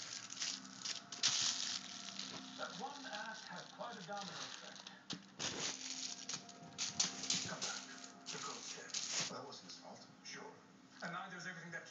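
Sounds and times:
crinkly ball crackling: 0:00.0 - 0:09.4.

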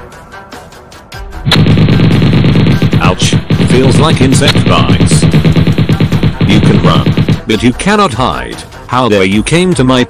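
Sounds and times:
rapid machine-gun fire: 0:01.5 - 0:07.8.

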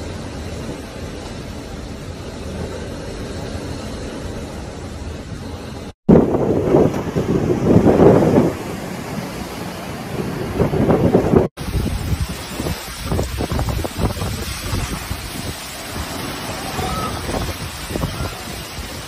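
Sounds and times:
heavy wind-driven rain: 0:00.0 - 0:19.0
wind buffeting microphone: 0:00.0 - 0:19.0.

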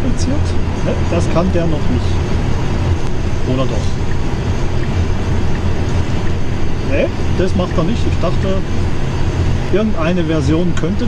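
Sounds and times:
car cabin road and wind noise: 0:00.0 - 0:11.0.

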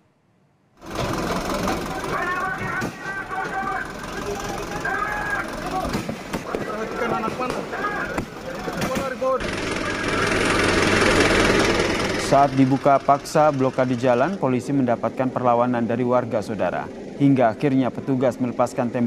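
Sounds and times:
vehicle engine noise: 0:00.8 - 0:19.0
crowd shouting: 0:00.9 - 0:11.8
sharp cracks: 0:04.4 - 0:10.1.

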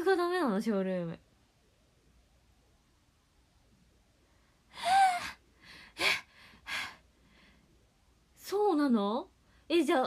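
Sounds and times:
short breaths: 0:05.6 - 0:07.8.

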